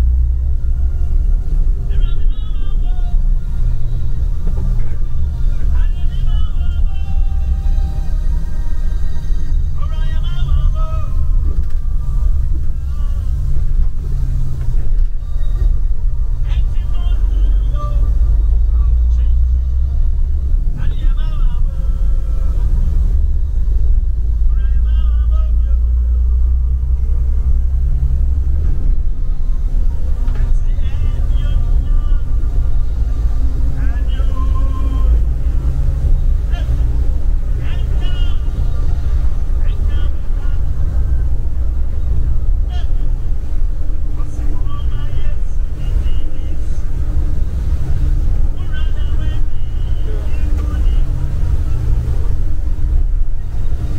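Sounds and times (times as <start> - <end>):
bus engine rumble: 0.0 - 53.9
people talking: 1.8 - 3.8, 4.4 - 8.2, 9.8 - 14.0, 16.4 - 19.7, 20.8 - 22.9, 24.4 - 26.4, 30.2 - 32.9, 33.7 - 41.4, 42.1 - 43.5, 44.1 - 47.2, 48.4 - 52.5.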